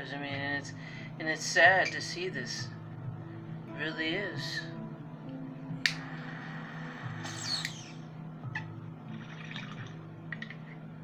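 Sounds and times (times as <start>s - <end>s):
quiet background music: 0.0s - 11.0s
water bong bubbling: 6.2s - 10.8s.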